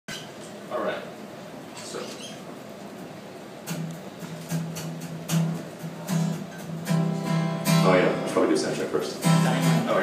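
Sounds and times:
acoustic guitar string plucked: 0:03.7 - 0:08.4, 0:09.2 - 0:10.0.

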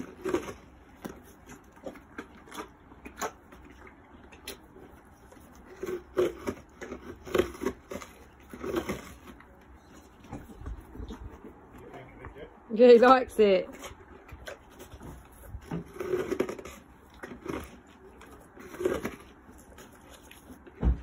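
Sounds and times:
pony biting ice crunches: 0:00.0 - 0:09.6, 0:14.0 - 0:20.8
pony licking ice: 0:00.0 - 0:11.9.

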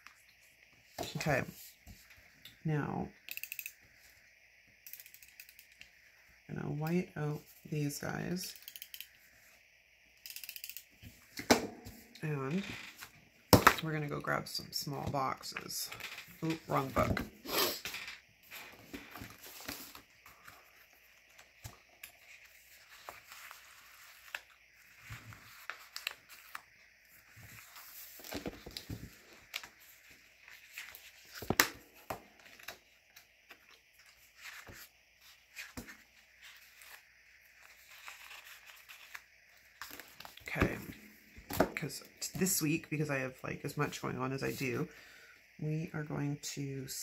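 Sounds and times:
pages flipping: 0:17.8 - 0:41.8.

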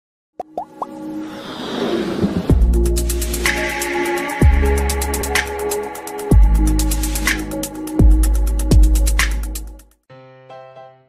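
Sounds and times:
whoosh: 0:01.1 - 0:03.6.

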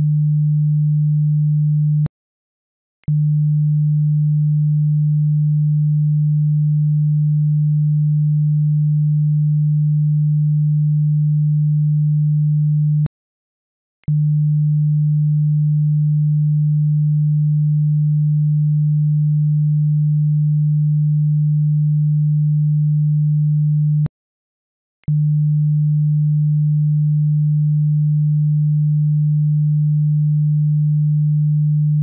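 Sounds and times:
sine-wave test tone: 0:00.0 - 0:02.1, 0:03.0 - 0:13.1, 0:14.1 - 0:24.1, 0:25.1 - 0:32.0.

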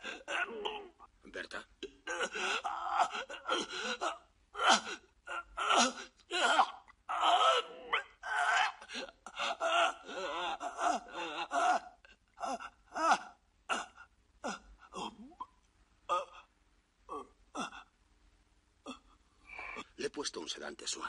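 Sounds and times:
person crying out: 0:00.0 - 0:01.0, 0:02.1 - 0:15.5
person gasping and groaning: 0:00.0 - 0:01.0, 0:02.1 - 0:15.5.

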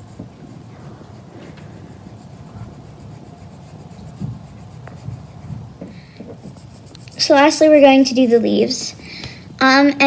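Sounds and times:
pencil scratching on paper: 0:00.0 - 0:08.4.

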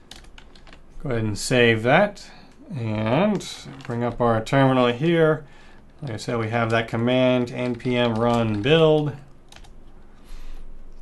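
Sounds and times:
keyboard keystrokes clicking: 0:07.6 - 0:09.7.

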